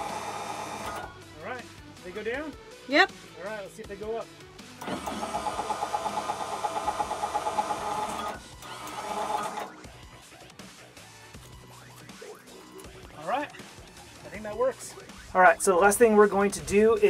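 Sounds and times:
electric jack motors running: 0.0s - 1.3s, 4.8s - 10.0s.

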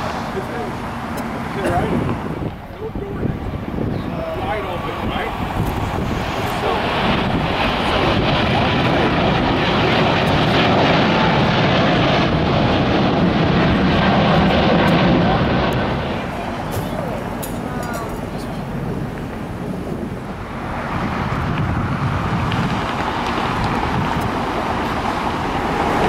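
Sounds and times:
jet engines at take-off thrust: 0.0s - 26.0s.

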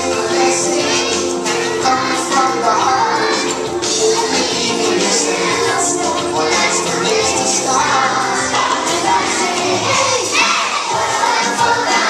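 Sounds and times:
children singing and shouting: 0.0s - 12.0s
recorded backing track: 0.0s - 12.0s.

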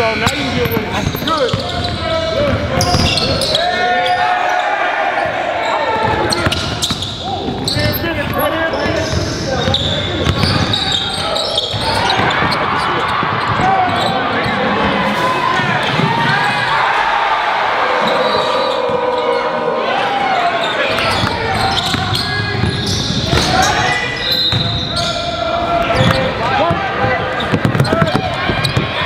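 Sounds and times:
indistinct shouting voices: 10.5s - 29.0s.

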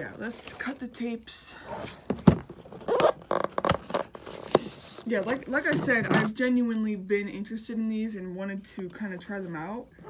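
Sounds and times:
tape scraping rip: 2.8s - 5.6s.

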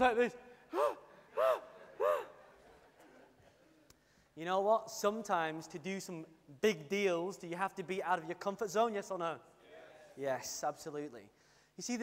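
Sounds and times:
man making gasp-like exclamations: 0.5s - 2.4s.

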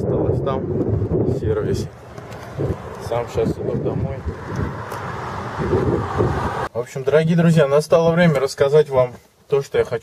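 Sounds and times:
wind buffeting microphone: 0.0s - 6.7s
man speaking: 1.3s - 2.0s, 3.0s - 4.3s, 6.7s - 10.0s.

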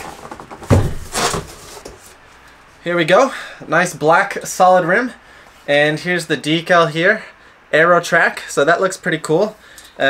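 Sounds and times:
cardboard scraping and rustling: 0.0s - 2.2s
thump: 0.6s - 1.5s.

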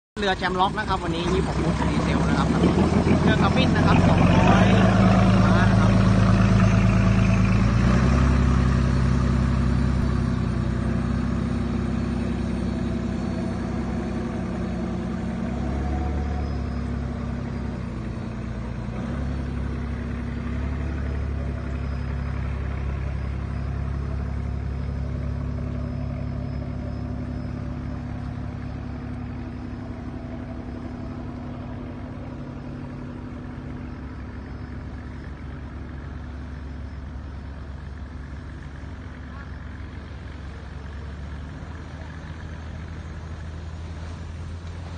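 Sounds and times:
boat diesel engine running: 0.2s - 44.9s.

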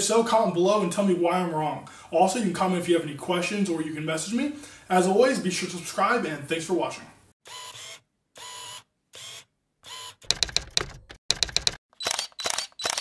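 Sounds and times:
mechanical clicking: 10.3s - 13.0s.

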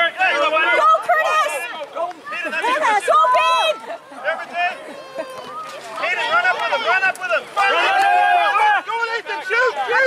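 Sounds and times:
children shouting: 0.0s - 10.0s.

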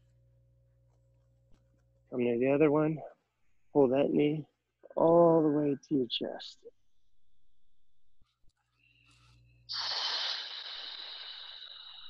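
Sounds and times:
breathy hiss of air: 9.0s - 12.0s.

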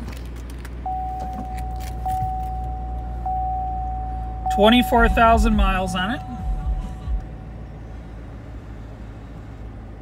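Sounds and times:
low steady hum: 0.0s - 10.0s
car warning chime: 0.8s - 7.8s.

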